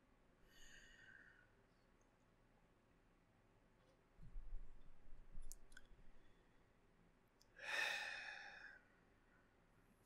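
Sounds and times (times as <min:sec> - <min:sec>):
faint clicks: 0:05.4 - 0:06.0.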